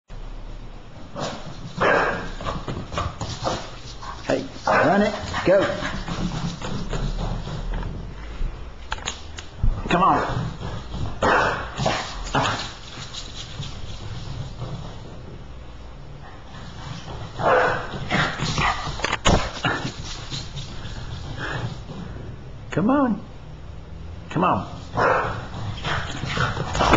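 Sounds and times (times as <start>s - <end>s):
dog barking: 1.8s - 2.3s, 11.2s - 11.7s, 17.4s - 17.9s, 25.0s - 25.5s.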